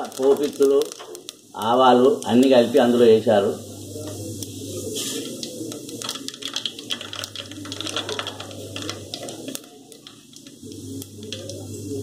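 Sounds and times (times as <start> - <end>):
seeds crackling in hot oil: 0.0 - 12.0.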